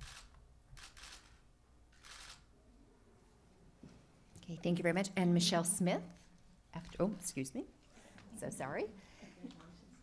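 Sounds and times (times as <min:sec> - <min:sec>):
camera shutter clicks: 0:00.0 - 0:01.4, 0:02.0 - 0:02.4.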